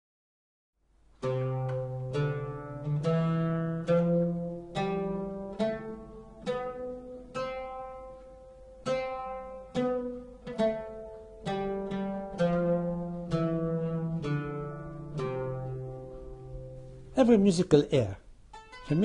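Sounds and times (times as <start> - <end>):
oud plucked notes: 1.2 - 19.0.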